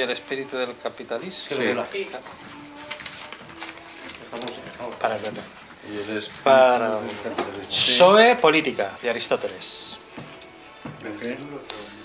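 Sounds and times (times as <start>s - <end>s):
paper handled: 0.0s - 10.5s
faint background voices: 0.0s - 12.0s.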